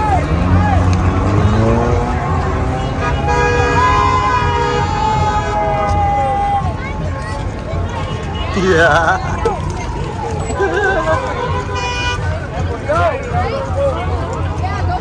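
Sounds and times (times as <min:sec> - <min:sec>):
crowd chatter: 0:00.0 - 0:15.0
traffic rumble: 0:00.0 - 0:15.0
car horn: 0:01.2 - 0:05.7, 0:11.0 - 0:12.4.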